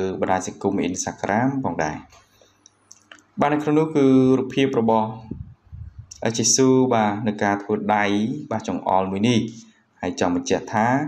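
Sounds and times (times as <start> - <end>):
person speaking: 2.9 - 11.0.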